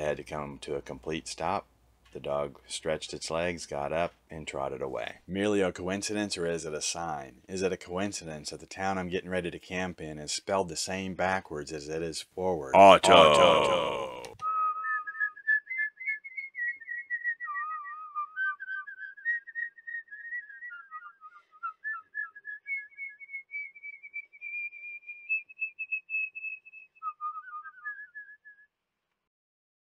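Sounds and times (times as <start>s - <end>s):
person whistling a slow tune: 14.4s - 28.7s.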